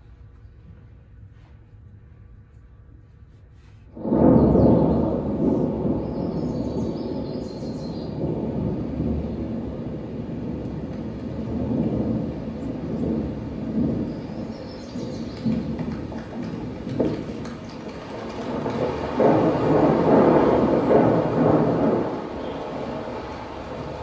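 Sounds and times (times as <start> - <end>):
recorded thunder rumble: 3.9 - 24.0.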